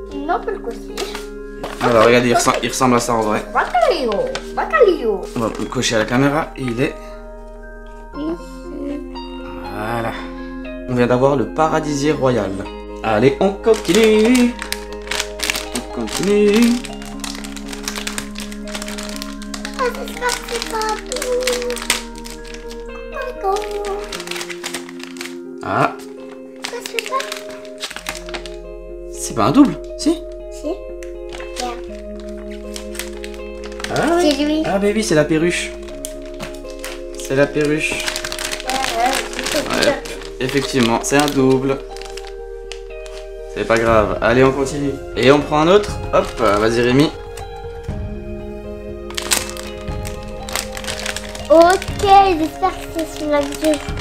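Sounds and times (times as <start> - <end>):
background music with held notes: 0.0 - 54.0
foil sachet crinkling and tearing: 0.9 - 4.8, 13.6 - 28.7, 31.2 - 34.6, 35.8 - 43.9, 45.2 - 47.5, 49.0 - 54.0.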